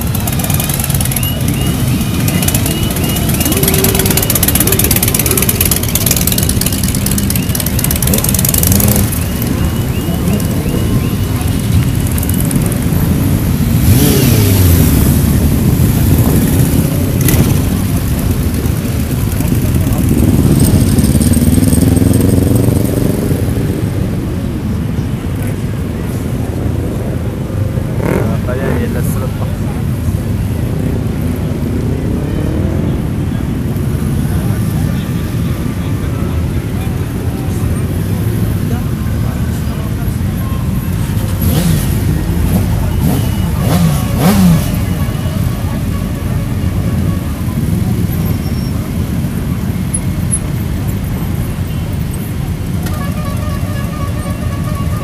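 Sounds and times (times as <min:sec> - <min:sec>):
crowd chatter: 0:00.0 - 0:55.0
motorcycle engines revving: 0:00.0 - 0:55.0.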